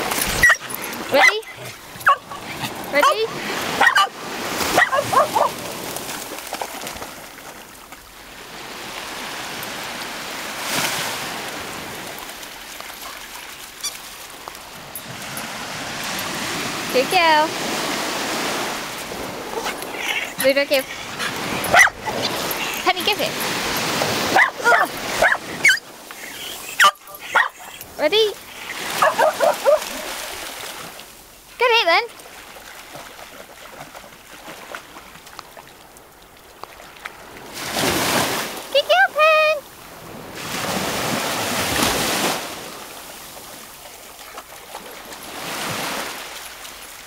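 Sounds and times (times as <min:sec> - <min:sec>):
dog splashing through water: 0:00.0 - 0:07.9, 0:26.2 - 0:31.1, 0:32.2 - 0:35.7
small sea waves washing in: 0:00.0 - 0:31.6, 0:32.2 - 0:38.8, 0:39.6 - 0:47.0
dog yipping: 0:00.2 - 0:04.1, 0:04.7 - 0:05.6, 0:19.5 - 0:22.9, 0:24.3 - 0:27.9, 0:28.6 - 0:30.1.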